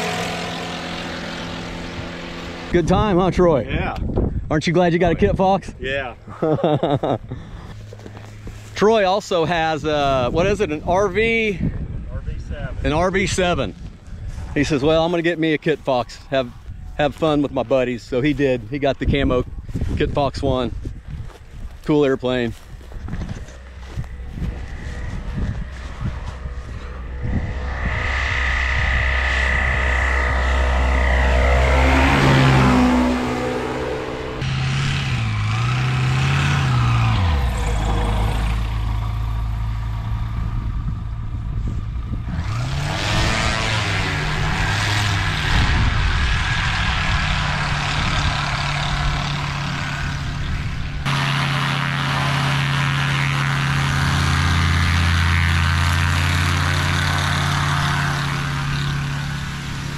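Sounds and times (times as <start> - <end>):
propeller plane passing low: 0.0 - 3.7, 5.8 - 59.9
plane engines at low power: 0.0 - 59.9.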